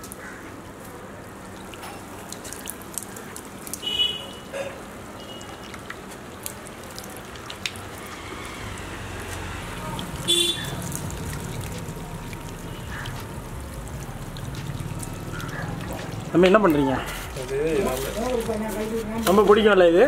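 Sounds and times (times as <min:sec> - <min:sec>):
water drips: 0:00.0 - 0:20.0
water splashing over bricks: 0:00.0 - 0:20.0.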